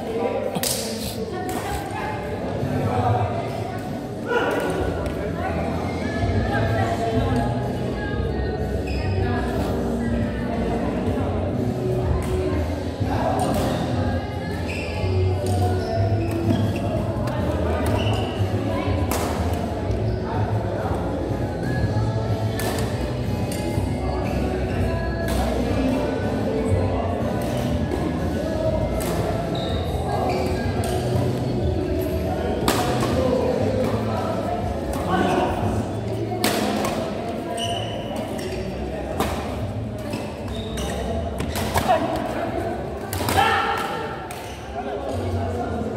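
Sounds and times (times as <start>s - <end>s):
voices in a hall: 0.0s - 45.9s
background music: 18.4s - 36.2s.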